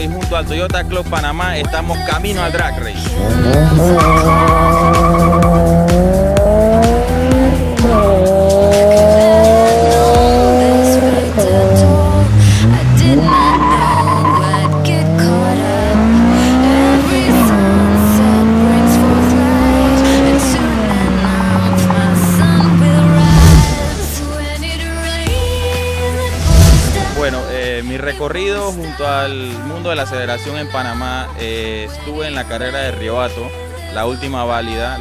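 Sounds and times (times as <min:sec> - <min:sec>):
music playing: 0:00.0 - 0:35.0
car engine accelerating: 0:03.0 - 0:24.6, 0:25.9 - 0:27.7.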